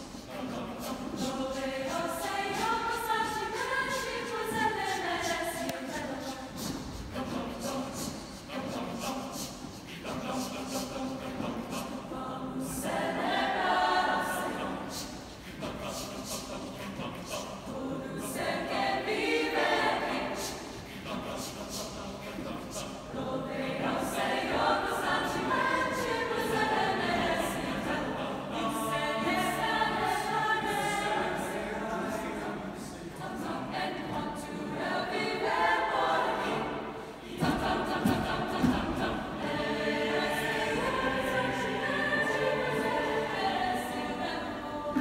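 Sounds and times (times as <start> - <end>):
choir singing a cappella: 0.0 - 45.0.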